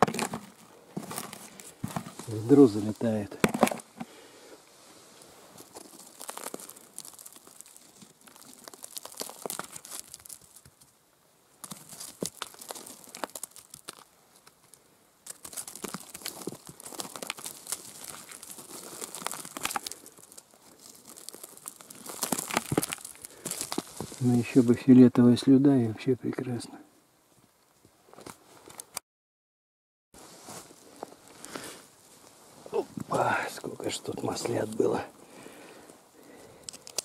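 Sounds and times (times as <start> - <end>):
pine needles and soil rustling: 0.0 - 29.0, 30.2 - 37.0.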